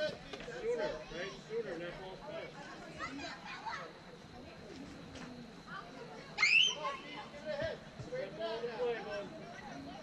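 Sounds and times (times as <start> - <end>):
children calling and chattering: 0.0 - 10.0
child's high-pitched shout: 6.4 - 7.0.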